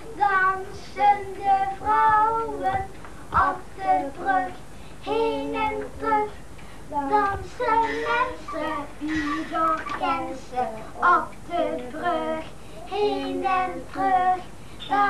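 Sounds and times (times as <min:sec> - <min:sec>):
boy singing unaccompanied: 0:00.0 - 0:15.0.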